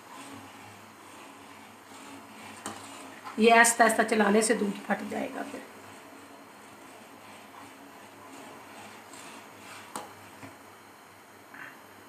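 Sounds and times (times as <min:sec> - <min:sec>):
stirring and pouring in a pot: 0:00.0 - 0:03.4, 0:04.0 - 0:10.5.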